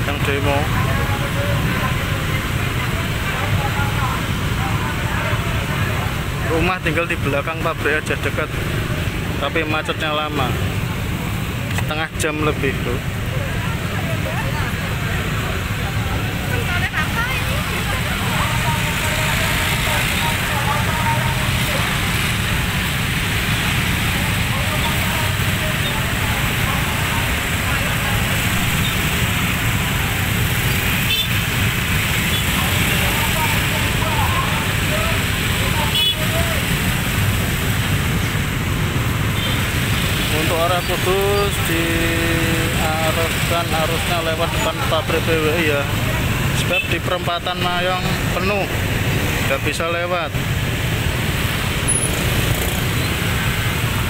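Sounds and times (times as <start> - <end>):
people's voices: 0.0 - 54.0
motorbike engines idling: 13.0 - 49.8.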